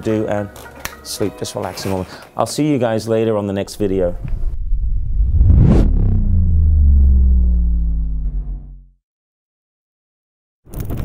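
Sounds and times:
deep booming rumble: 0:03.8 - 0:09.0
whoosh: 0:04.1 - 0:08.8.

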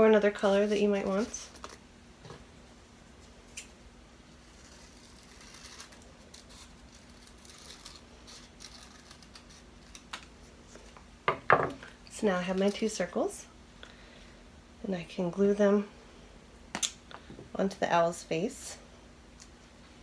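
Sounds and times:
scissors cutting paper: 0:04.4 - 0:10.2.

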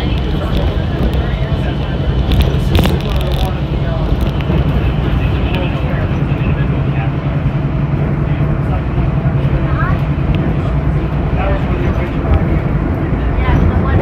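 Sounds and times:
monorail train rumble: 0:00.0 - 0:14.0
passengers' voices: 0:00.0 - 0:14.0.

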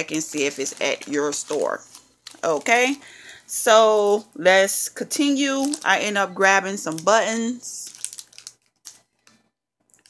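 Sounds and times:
plastic packaging clicks and crinkles: 0:00.0 - 0:03.4, 0:05.4 - 0:10.0.

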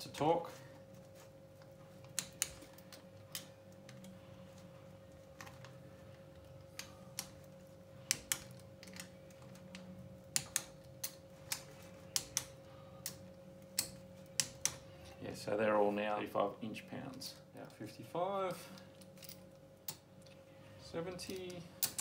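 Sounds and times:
faint steady hum: 0:00.0 - 0:22.0.

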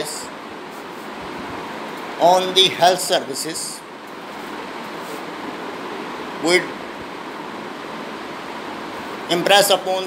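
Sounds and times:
room background hiss: 0:00.0 - 0:10.0.

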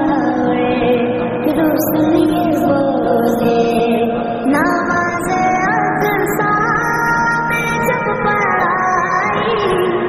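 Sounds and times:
devotional chant-like singing: 0:00.0 - 0:10.0.

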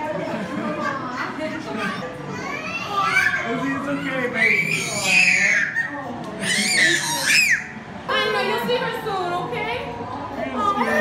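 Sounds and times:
toddler crying: 0:02.3 - 0:07.7.

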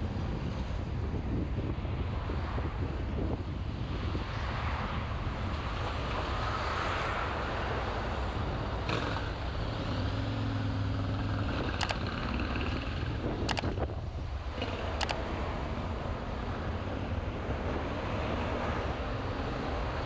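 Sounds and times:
road and engine noise: 0:00.0 - 0:20.0
sharp clicks: 0:11.6 - 0:12.4, 0:13.4 - 0:13.9, 0:15.0 - 0:15.2.

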